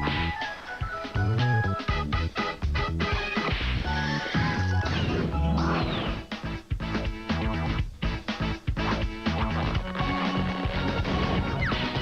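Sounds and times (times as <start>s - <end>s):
upbeat cartoon music: 0.0s - 12.0s.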